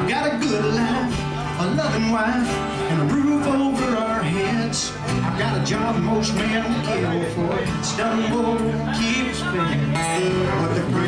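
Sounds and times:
acoustic guitars strummed: 0.0s - 11.0s
man singing: 0.0s - 11.0s.

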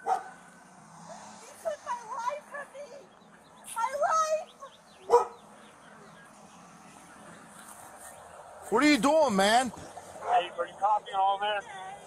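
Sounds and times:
dog barking: 0.0s - 0.4s, 5.0s - 5.4s.

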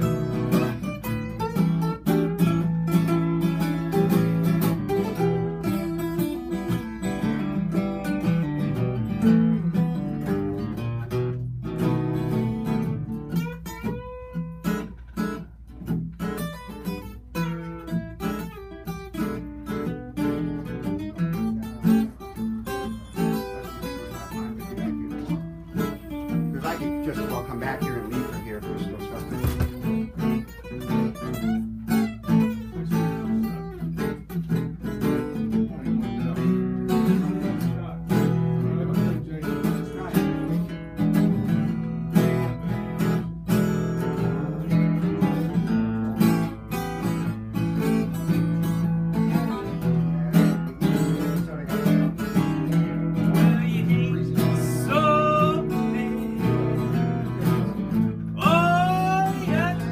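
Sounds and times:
acoustic guitars strumming: 0.0s - 59.9s.

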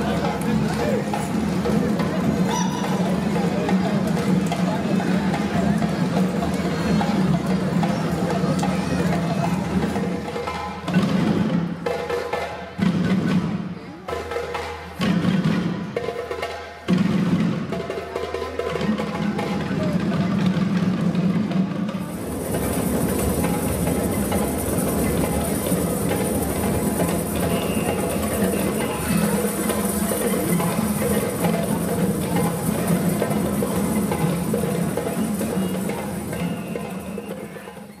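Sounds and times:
children's voices: 0.0s - 10.6s, 23.3s - 38.0s
children playing hand drums: 0.0s - 38.0s.

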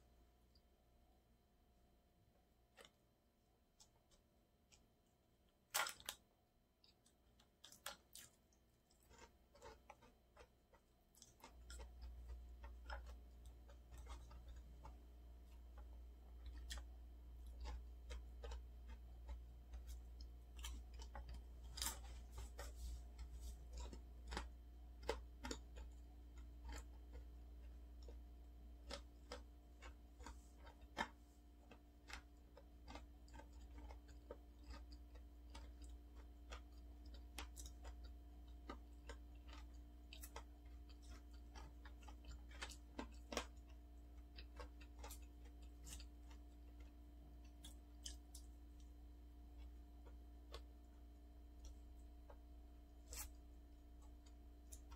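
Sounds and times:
chewing with wet mouth clicks: 6.8s - 54.9s
steady low hum: 9.3s - 54.9s.

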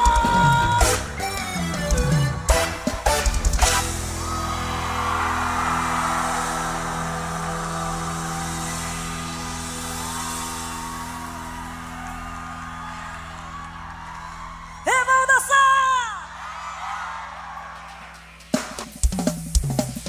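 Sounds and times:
band sustained chord: 3.6s - 13.6s
crowd cheering and whooping: 3.8s - 18.6s.

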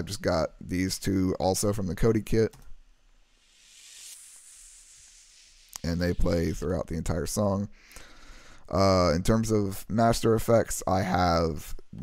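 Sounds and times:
white-noise sweep hiss: 0.0s - 12.0s.

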